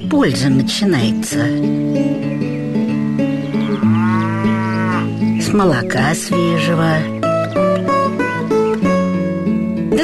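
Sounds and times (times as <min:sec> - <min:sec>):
background music: 0:00.0 - 0:10.0
cow mooing: 0:03.0 - 0:05.2.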